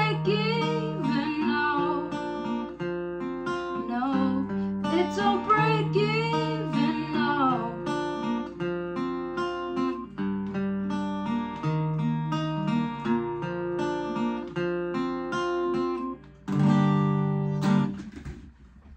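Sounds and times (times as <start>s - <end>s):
acoustic guitar fingerpicking: 0.0s - 18.5s.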